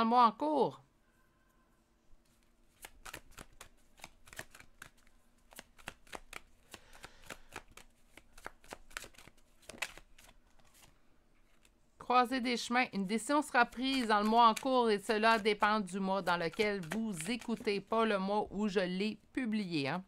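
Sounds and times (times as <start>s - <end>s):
cards being shuffled: 2.2s - 11.8s, 13.1s - 18.1s.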